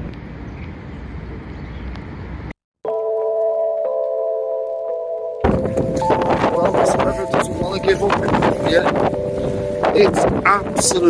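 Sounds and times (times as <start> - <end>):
soft outdoor noise: 0.0 - 2.5
sustained tones hum: 4.6 - 11.0
wind buffeting microphone: 5.4 - 11.0.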